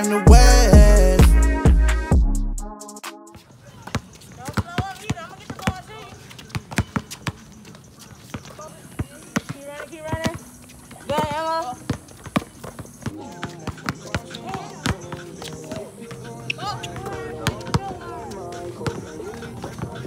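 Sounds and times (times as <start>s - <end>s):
basketballs bouncing on hard court: 3.3s - 20.0s
voices calling out: 3.6s - 20.0s.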